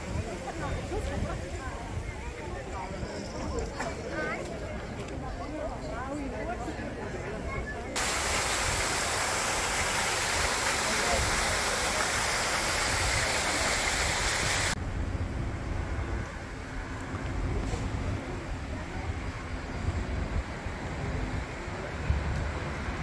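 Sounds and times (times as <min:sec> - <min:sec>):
crowd chattering: 0:00.0 - 0:14.8, 0:16.2 - 0:23.0
fountain water splashing into basin: 0:08.0 - 0:14.8.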